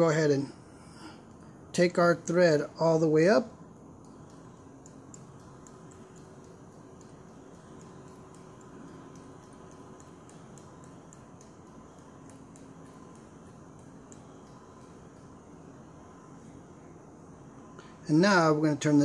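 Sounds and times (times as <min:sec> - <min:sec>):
steady low hiss: 0:00.0 - 0:19.0
faint irregular ticking: 0:03.8 - 0:16.2.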